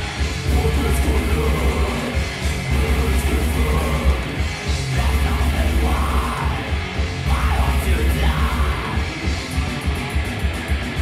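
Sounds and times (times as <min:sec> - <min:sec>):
harsh yelled vocals: 0:00.0 - 0:09.8
distorted electric guitars: 0:00.0 - 0:11.0
drums: 0:00.0 - 0:11.0.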